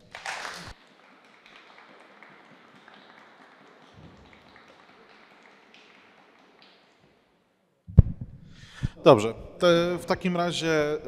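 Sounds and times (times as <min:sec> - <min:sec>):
scattered applause: 0:00.0 - 0:07.0.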